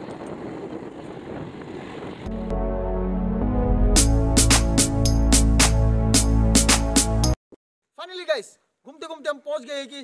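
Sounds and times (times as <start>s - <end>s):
motorbike riding along road: 0.0s - 2.3s.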